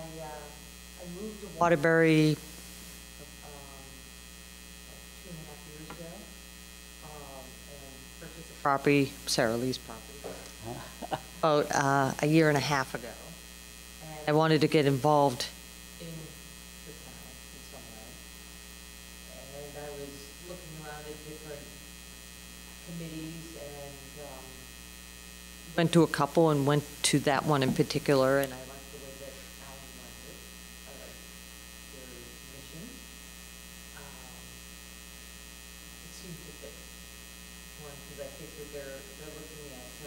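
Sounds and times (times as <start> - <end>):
electrical mains hum: 0.0 - 40.0
low buzz: 0.0 - 40.0
faint voice murmuring: 10.2 - 11.2.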